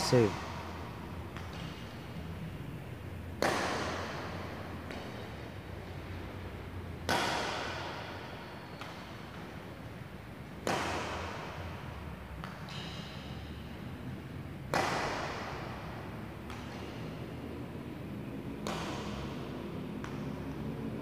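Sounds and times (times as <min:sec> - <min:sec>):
racket hitting shuttlecock: 0:00.4 - 0:02.4, 0:03.3 - 0:06.0, 0:06.9 - 0:13.8, 0:14.6 - 0:17.4, 0:18.5 - 0:20.8.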